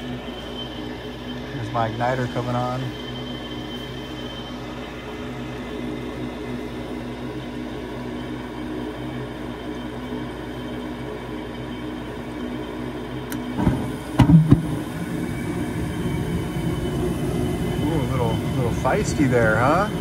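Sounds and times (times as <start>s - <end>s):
igniter click: 13.3s - 15.0s
draft inducer humming: 13.3s - 20.0s
flame rumbling: 13.3s - 20.0s
burners igniting with a rush: 13.4s - 20.0s
sharp pops: 13.6s - 14.9s.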